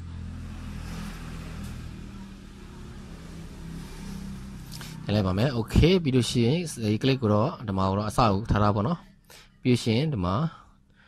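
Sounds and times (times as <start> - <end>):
faint rushing noise: 0.0 - 6.4.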